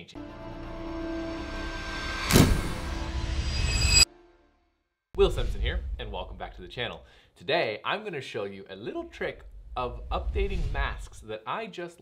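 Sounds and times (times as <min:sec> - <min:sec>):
swelling sound effect: 0:00.2 - 0:04.3.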